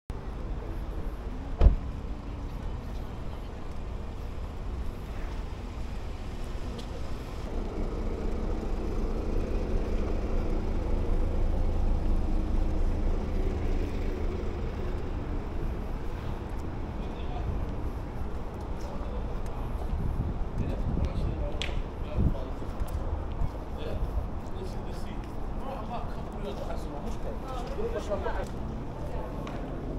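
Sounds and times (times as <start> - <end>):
engine hum: 0.1 - 29.9
low rumble of traffic: 0.1 - 29.9.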